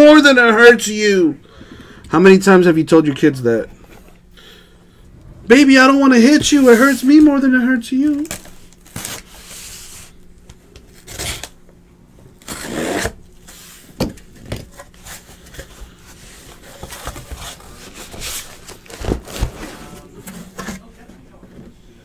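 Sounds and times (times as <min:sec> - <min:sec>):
cardboard scraping and rubbing: 0:05.5 - 0:07.4, 0:12.4 - 0:13.9, 0:14.7 - 0:21.0.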